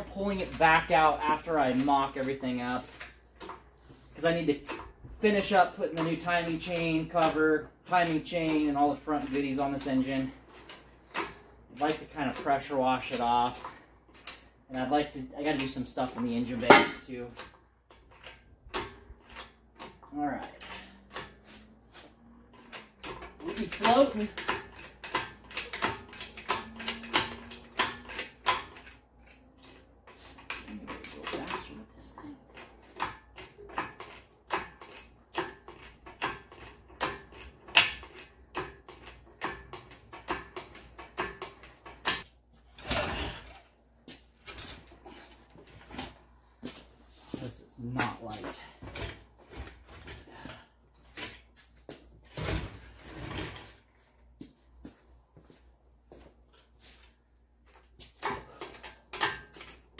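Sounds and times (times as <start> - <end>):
hydraulic hoist clicking and clanking: 0.0 - 46.4, 56.9 - 59.9.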